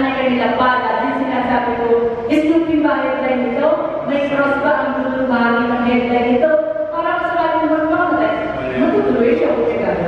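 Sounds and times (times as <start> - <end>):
man chanting through a microphone: 8.6 - 9.0.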